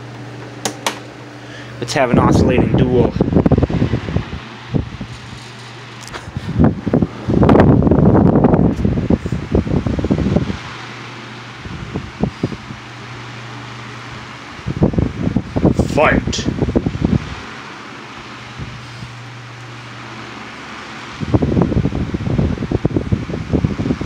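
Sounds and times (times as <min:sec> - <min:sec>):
desk fan motors humming: 0:00.0 - 0:24.0
fan airflow gusting on microphone: 0:00.0 - 0:24.0.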